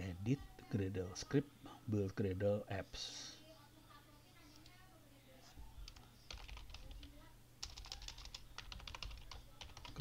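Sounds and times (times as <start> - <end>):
typing on computer keyboard: 5.9 - 10.0.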